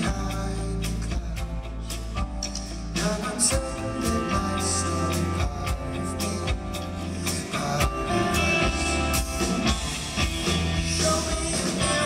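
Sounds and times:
bass notes: 0:00.0 - 0:12.0
electric guitar: 0:00.0 - 0:12.0.

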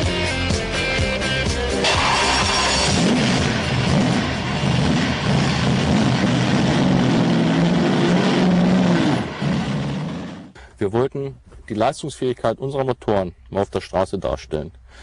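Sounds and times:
car engine revving: 0:01.7 - 0:10.6.

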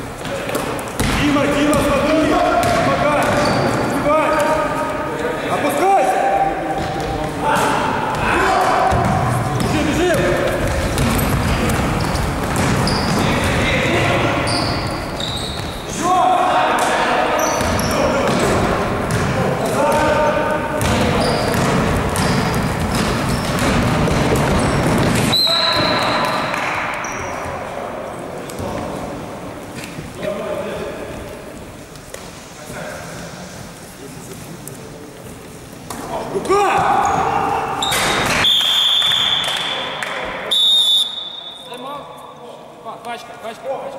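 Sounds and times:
players' voices: 0:00.0 - 0:43.9
basketball dribbling: 0:02.6 - 0:03.6, 0:08.9 - 0:13.6, 0:20.8 - 0:26.2
sneaker squeaks on court: 0:02.6 - 0:04.6, 0:10.7 - 0:13.6, 0:14.4 - 0:15.9, 0:17.4 - 0:18.5, 0:20.2 - 0:27.5
referee's whistle blasts: 0:25.3 - 0:26.5, 0:37.8 - 0:39.8, 0:40.5 - 0:41.8.

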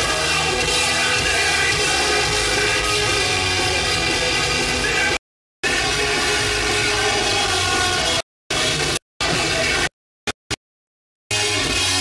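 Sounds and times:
heavy metal band playing live: 0:00.0 - 0:09.9, 0:11.3 - 0:12.0.

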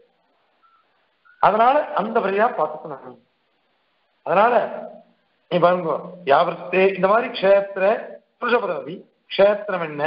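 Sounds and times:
man lecturing: 0:01.3 - 0:03.2, 0:04.2 - 0:10.0.

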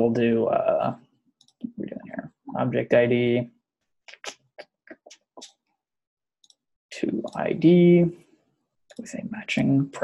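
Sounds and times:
keyboard and mouse clicks: 0:06.4 - 0:07.5.

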